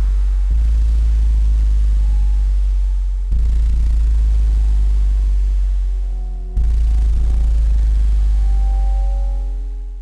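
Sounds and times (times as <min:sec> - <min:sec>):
deep electronic bass drone: 0:00.0 - 0:10.0
steady low hum: 0:00.0 - 0:10.0.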